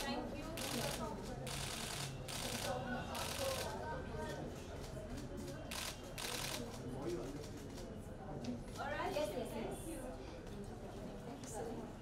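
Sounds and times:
crowd low chatter: 0.0s - 12.0s.

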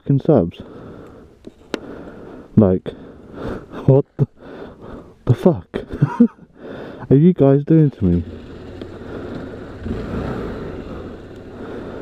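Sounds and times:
wind and road noise: 0.0s - 12.0s
motorcycle engine running: 7.9s - 12.0s.

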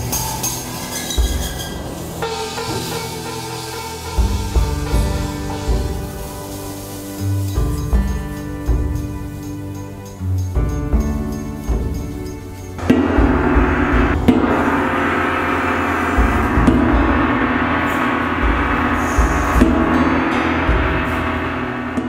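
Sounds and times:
brass gong ringing: 12.8s - 22.0s.

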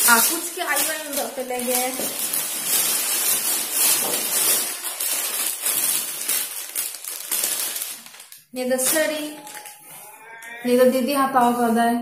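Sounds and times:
plastic bag rustling: 0.0s - 10.8s.

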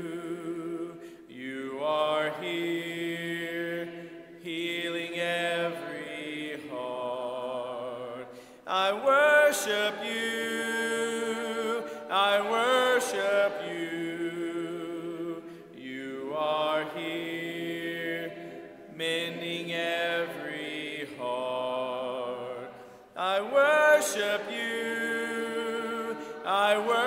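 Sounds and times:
man leading singing: 0.0s - 3.8s, 4.5s - 18.3s, 19.0s - 27.0s
congregation singing a hymn: 0.0s - 27.0s.

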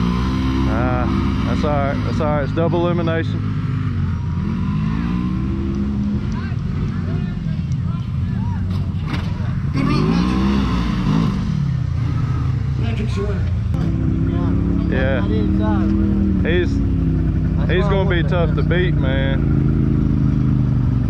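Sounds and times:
engine revving: 0.0s - 7.9s, 8.7s - 21.0s
utility vehicle engines idling: 0.0s - 10.4s, 11.5s - 21.0s.

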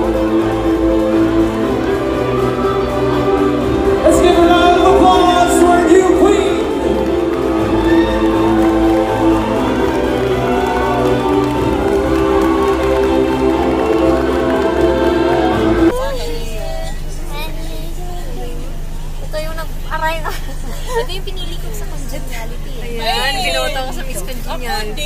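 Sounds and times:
music: 0.0s - 16.0s
women's voices: 15.9s - 25.0s.

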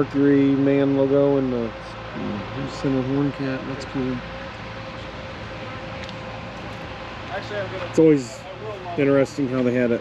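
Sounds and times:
faint constant hum: 0.0s - 10.0s.

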